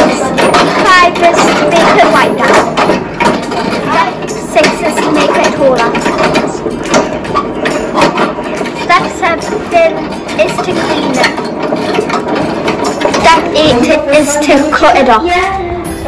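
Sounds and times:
people talking: 0.0s - 2.8s, 3.8s - 6.6s, 8.8s - 11.4s, 13.1s - 15.8s
electric pottery wheel running: 0.0s - 15.4s.

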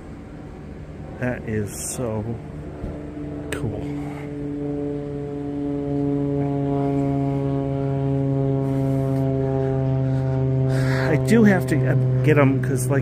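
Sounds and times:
steady droning hum: 0.0s - 13.0s.

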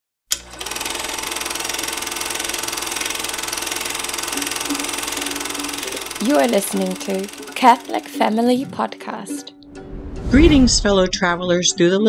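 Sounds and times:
click: 0.3s - 0.5s
held tones: 0.3s - 9.5s
fast mechanical clatter: 0.4s - 8.5s.

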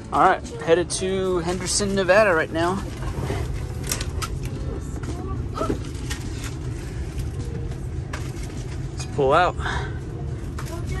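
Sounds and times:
motorhome engine rumble: 0.0s - 11.0s.

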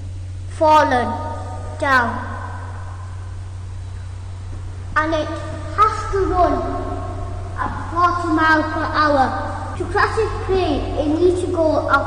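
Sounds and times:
low background hum: 0.0s - 12.0s
child speaking: 0.5s - 2.9s, 5.0s - 12.0s.

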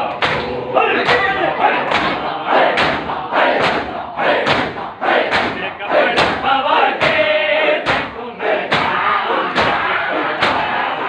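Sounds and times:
hands slapping chests in unison: 0.0s - 10.9s
crowd voices: 0.0s - 11.0s.

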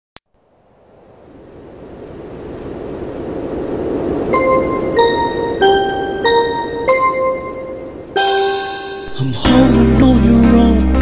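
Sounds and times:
rushing noise build-up: 0.4s - 9.4s.

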